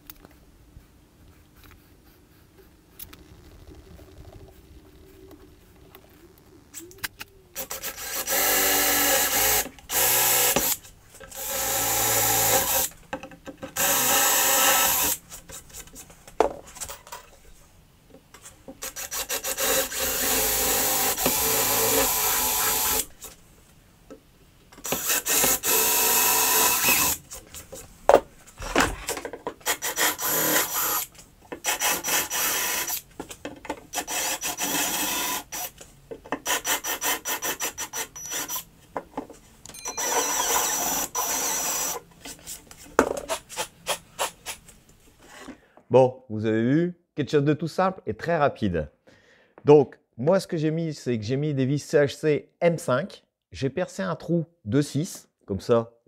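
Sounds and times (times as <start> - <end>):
cordless drill drilling: 7.6 - 12.9, 13.8 - 15.2, 18.8 - 23.1, 24.8 - 27.2, 29.6 - 33.0, 33.9 - 35.8, 36.4 - 38.7, 39.9 - 42.0.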